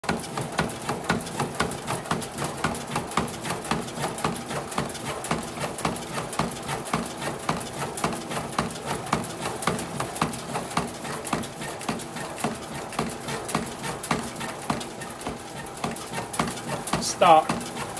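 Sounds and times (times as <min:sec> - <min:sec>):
bat rolling machine clicking: 0:00.1 - 0:17.9.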